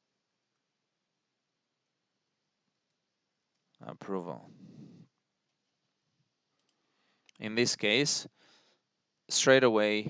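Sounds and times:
faint clicks: 0:06.5 - 0:07.4.

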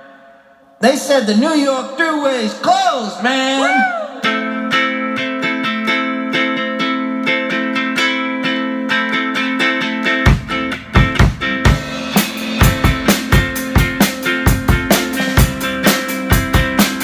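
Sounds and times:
ukulele strumming chords: 0:04.2 - 0:17.0
bass drum beats: 0:10.3 - 0:17.0.

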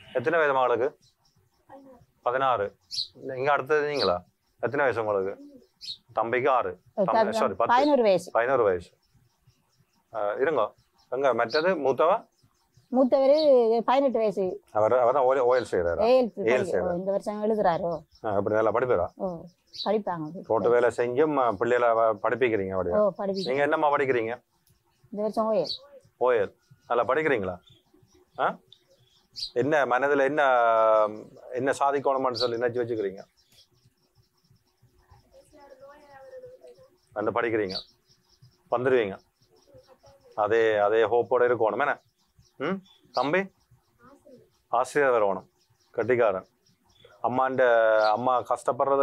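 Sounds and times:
people talking: 0:00.0 - 0:01.0, 0:01.7 - 0:08.9, 0:10.1 - 0:12.2, 0:12.9 - 0:24.4, 0:25.2 - 0:27.7, 0:28.4 - 0:28.6, 0:29.6 - 0:33.3, 0:35.1 - 0:37.8, 0:38.7 - 0:42.0, 0:42.6 - 0:46.4, 0:47.2 - 0:49.0
person talking: 0:07.0 - 0:08.4, 0:15.9 - 0:21.6.

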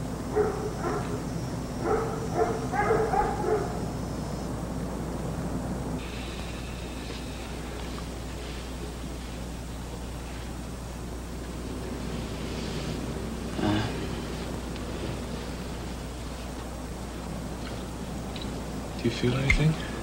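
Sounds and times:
steady low hum: 0:00.0 - 0:20.0
dog barking: 0:00.3 - 0:03.9.

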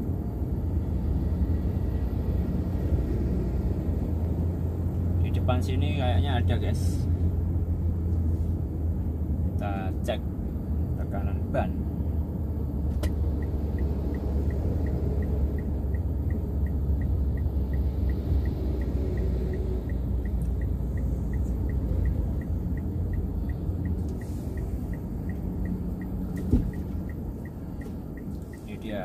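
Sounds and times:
car engine and road rumble: 0:00.0 - 0:29.0
thump: 0:26.4 - 0:26.8.

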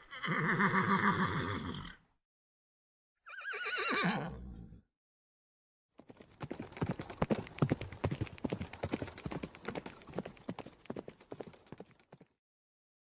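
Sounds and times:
galloping hoofbeats: 0:06.0 - 0:12.4.

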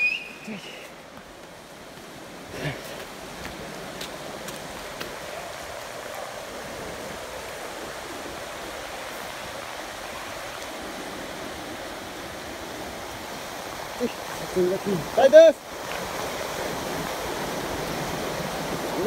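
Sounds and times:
river water over rocky rapids: 0:00.0 - 0:19.0.

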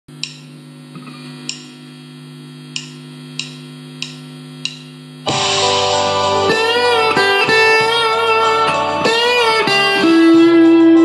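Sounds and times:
mains hum from guitar amplifier: 0:00.1 - 0:11.0
sharp clicks: 0:02.7 - 0:04.9.

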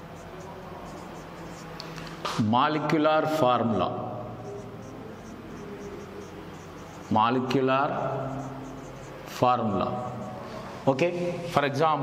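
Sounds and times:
marker writing on whiteboard: 0:00.0 - 0:10.8.

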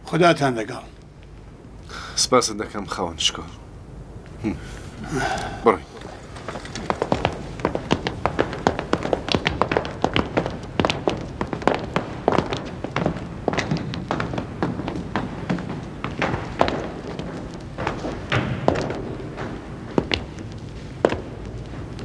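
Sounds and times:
footsteps on hard floor: 0:05.9 - 0:22.0.

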